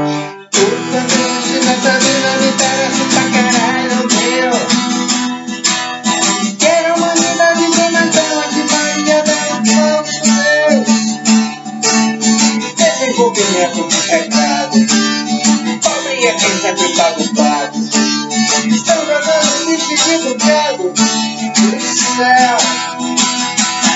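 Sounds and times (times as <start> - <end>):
man singing: 0.0 - 23.3
guitar strumming chords: 0.0 - 23.9.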